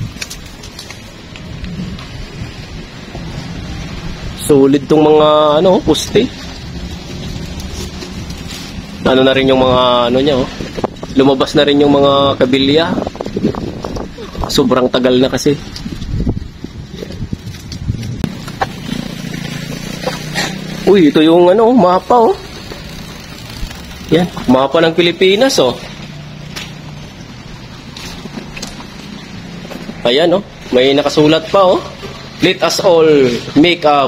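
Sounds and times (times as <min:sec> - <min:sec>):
wind buffeting microphone: 0:00.0 - 0:04.5, 0:05.8 - 0:20.0.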